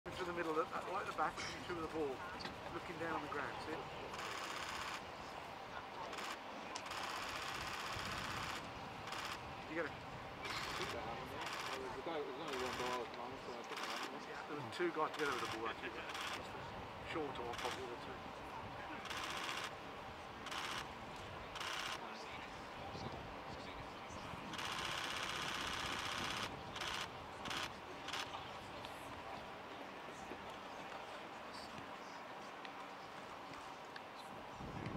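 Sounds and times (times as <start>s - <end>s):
distant voices calling: 0.1s - 29.6s
camera shutter clicks: 13.7s - 14.1s.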